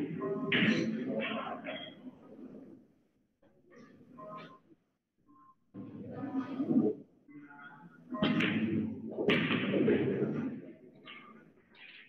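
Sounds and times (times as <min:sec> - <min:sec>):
noise: 0:00.0 - 0:12.0.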